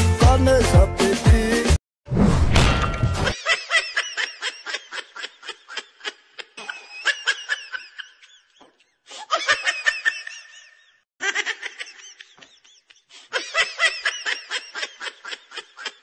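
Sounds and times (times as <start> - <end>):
high-pitched laughter: 3.3 - 16.0.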